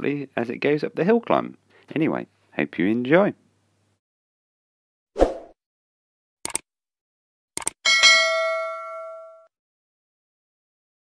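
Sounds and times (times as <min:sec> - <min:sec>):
bell ding: 0:07.9 - 0:09.5.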